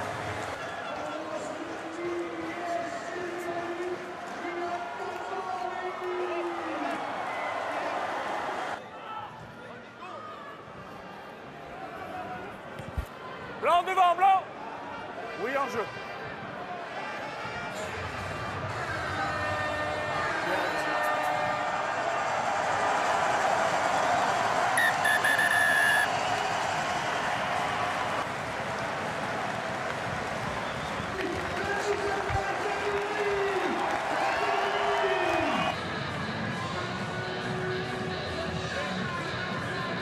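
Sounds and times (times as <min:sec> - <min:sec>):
stadium crowd cheering and applauding: 0:00.0 - 0:09.2, 0:15.4 - 0:37.6
referee's whistle: 0:24.8 - 0:26.1.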